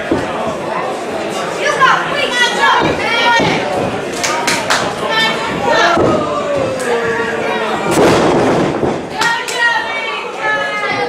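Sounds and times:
crowd shouting: 0:01.6 - 0:08.2.

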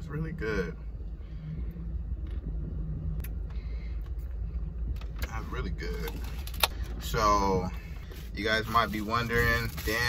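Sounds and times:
car cabin low rumble: 0:00.0 - 0:10.0
faint hum: 0:00.0 - 0:10.0.

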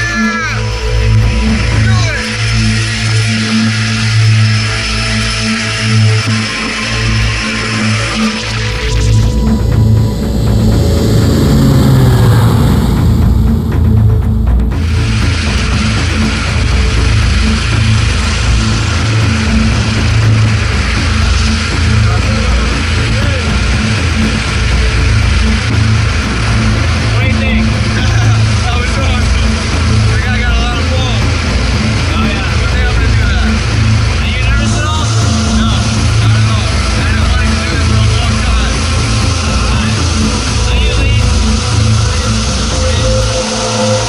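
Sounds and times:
propeller plane engine drone: 0:00.0 - 0:44.0
rushing air: 0:00.7 - 0:44.0.

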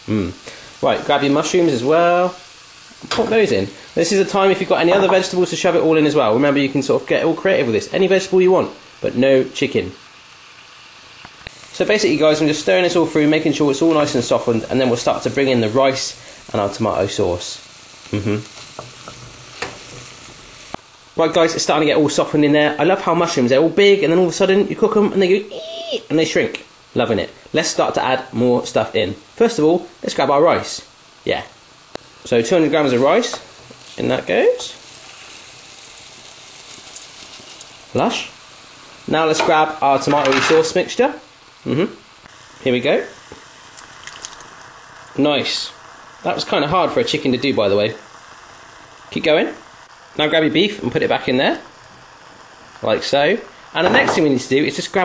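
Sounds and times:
vegetables sizzling in a pot: 0:00.0 - 0:55.0.

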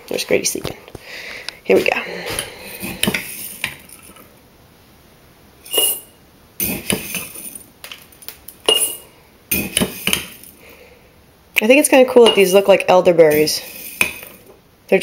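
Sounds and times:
spoon clinking and scraping on glass: 0:05.6 - 0:07.7, 0:08.6 - 0:10.5.

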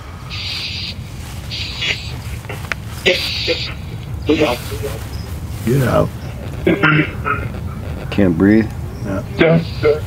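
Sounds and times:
bursts of filtered static: 0:00.0 - 0:10.0
steady low hum: 0:00.0 - 0:10.0.

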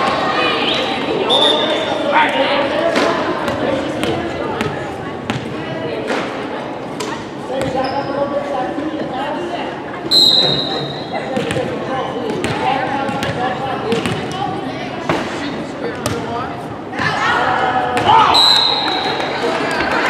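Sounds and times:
players' voices echoing: 0:00.0 - 0:20.0
referee whistle: 0:10.1 - 0:11.1, 0:18.3 - 0:19.1.

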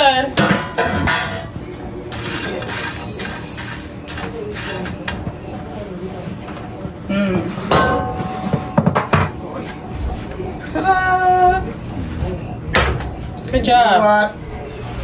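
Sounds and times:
dishes clicking and knocking: 0:00.4 - 0:01.6, 0:07.7 - 0:09.4
low indistinct talking: 0:08.3 - 0:15.0.

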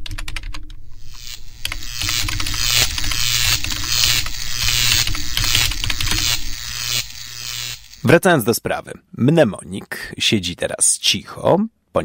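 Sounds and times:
electronic whirring and buzzing: 0:00.8 - 0:08.2.

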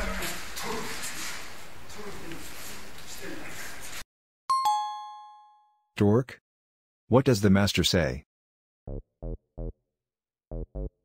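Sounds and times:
two-note chime: 0:04.5 - 0:05.9.

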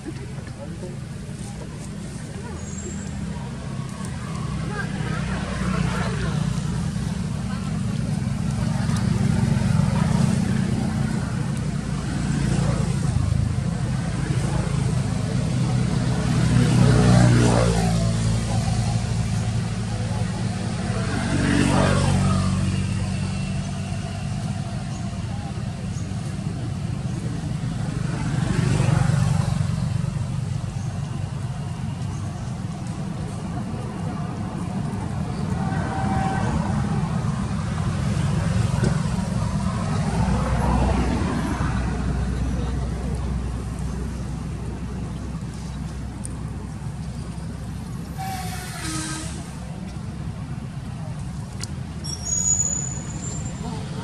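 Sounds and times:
low engine hum: 0:00.0 - 0:54.0
motor vehicles passing: 0:00.0 - 0:54.0.

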